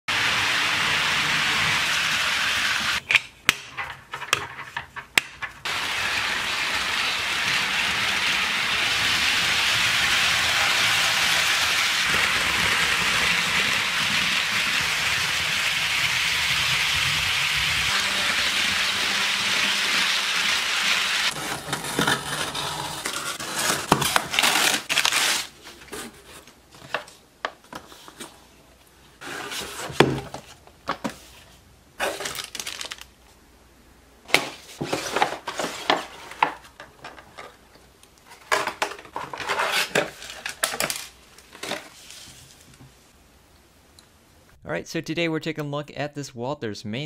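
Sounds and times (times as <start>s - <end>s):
model trains rolling on track: 5.7s - 20.4s.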